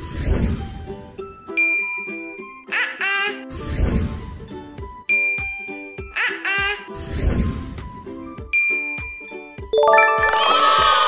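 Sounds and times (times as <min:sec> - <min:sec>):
light children's music: 0:00.1 - 0:11.0
baby giggle: 0:02.7 - 0:03.5, 0:06.2 - 0:06.9.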